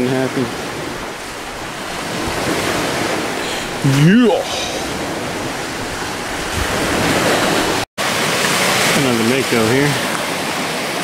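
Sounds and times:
wind on microphone: 0.0 - 7.8
small waves on shore: 0.0 - 11.0.

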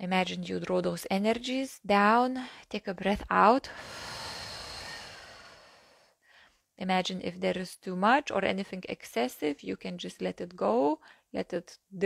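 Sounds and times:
woman exhaling slowly: 3.7 - 6.1.

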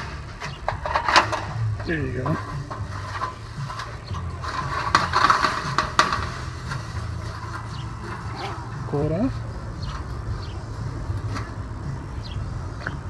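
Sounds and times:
rustling scrape of pad panel: 0.0 - 10.4.

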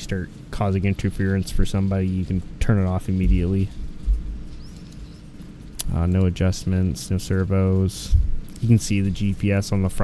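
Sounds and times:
faint steady hum: 0.0 - 10.0
soft low thump: 3.2 - 4.4, 8.1 - 8.4.

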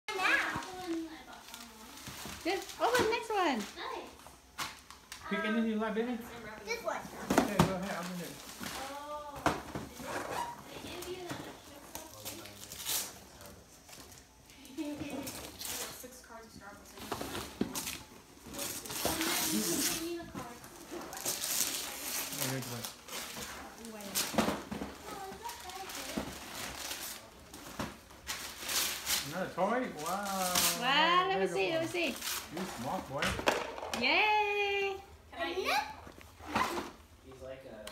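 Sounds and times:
wrapping paper tearing and crinkling: 0.1 - 3.8, 9.9 - 14.4, 15.2 - 16.2, 17.0 - 31.1, 31.9 - 33.2.

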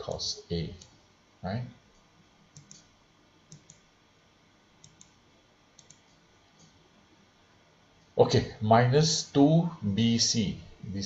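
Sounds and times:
computer mouse clicks: 2.5 - 2.9, 3.5 - 3.9, 4.8 - 5.2, 5.8 - 6.8.

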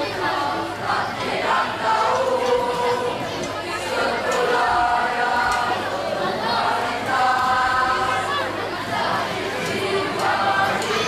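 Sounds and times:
boys' choir singing in unison: 0.0 - 11.0
crowd chatter: 0.0 - 11.0.

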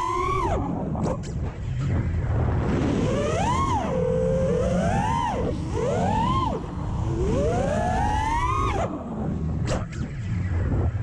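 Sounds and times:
drone motors and propellers whining: 0.0 - 11.0
steady low rumble: 0.4 - 11.0.

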